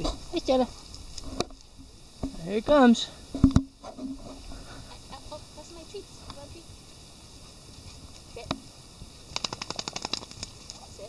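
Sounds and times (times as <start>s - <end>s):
wet dog shaking off: 9.3s - 11.0s.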